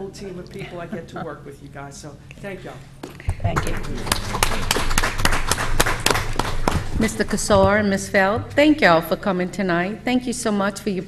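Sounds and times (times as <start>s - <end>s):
small group applauding: 3.4s - 7.4s.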